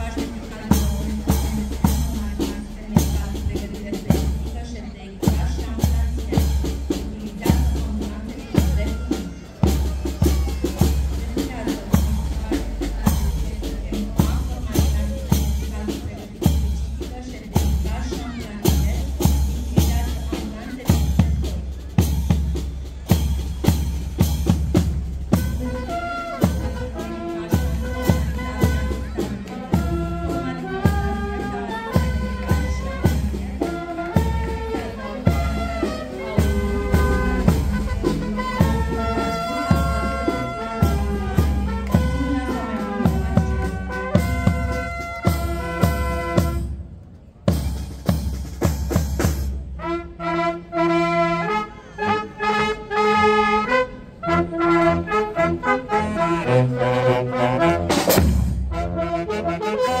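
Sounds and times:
bass drum beat: 0.0s - 46.8s, 47.5s - 49.7s
brass band playing a march: 0.0s - 46.9s, 47.5s - 60.0s.

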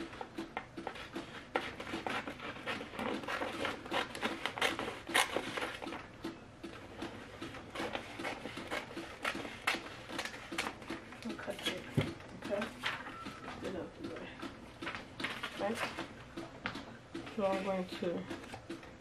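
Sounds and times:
scissors snipping paper: 0.8s - 6.0s, 7.7s - 11.8s.

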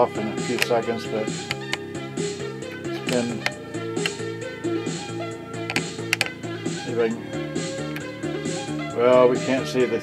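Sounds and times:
music from a boombox: 0.0s - 10.0s.

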